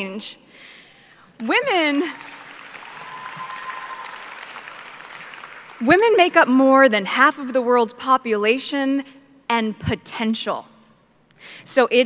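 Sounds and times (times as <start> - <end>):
audience applause: 2.2 - 5.8.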